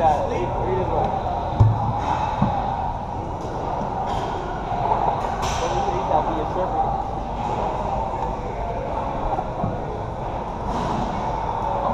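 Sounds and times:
busy gym rumbling din: 0:00.0 - 0:11.9.

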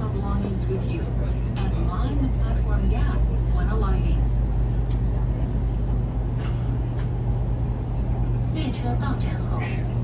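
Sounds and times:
train low rumble from inside: 0:00.0 - 0:10.0.

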